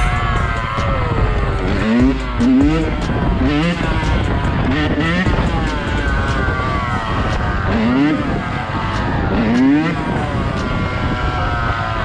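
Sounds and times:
wind rush on microphone: 0.0 - 12.0
dirt bike engine revving: 1.4 - 12.0.

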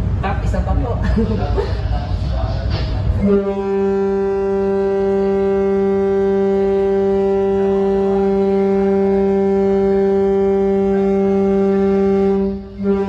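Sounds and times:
ship's horn blast: 3.2 - 13.0.

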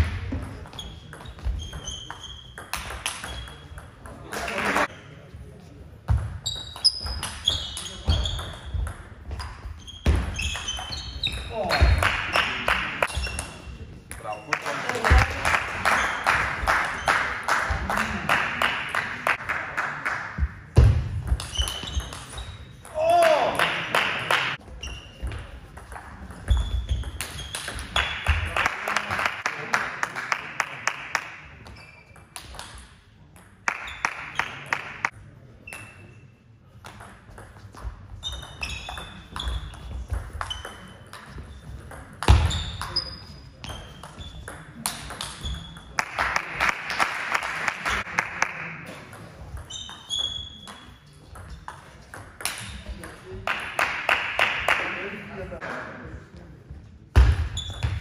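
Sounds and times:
spectators clapping: 4.4 - 4.9, 14.5 - 20.4, 23.2 - 24.6, 28.0 - 31.4, 33.6 - 35.1, 46.0 - 48.8, 53.4 - 55.1.

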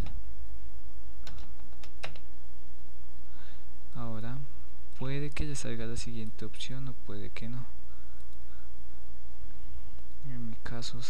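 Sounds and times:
steady low hum: 0.0 - 11.0
keyboard keystrokes: 1.2 - 2.3.

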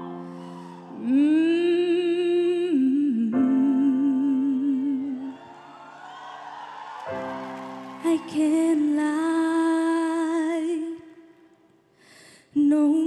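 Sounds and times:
piano chords: 0.0 - 10.6.

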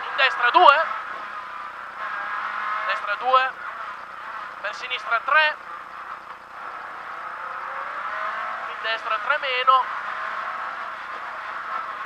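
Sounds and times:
car engine at speed: 0.0 - 12.0
road noise inside car: 0.0 - 12.0.

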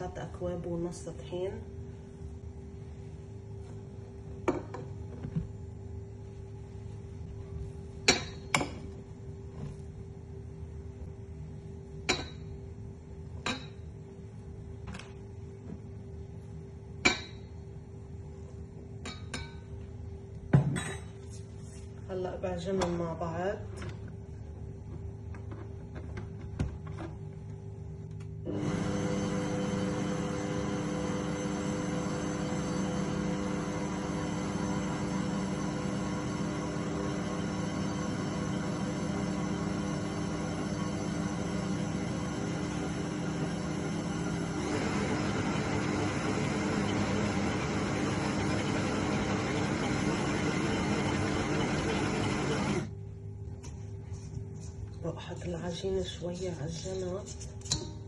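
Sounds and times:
stand mixer motor hum: 28.5 - 52.9.

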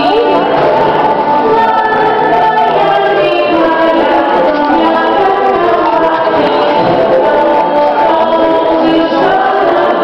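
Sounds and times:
children singing: 0.0 - 10.0.

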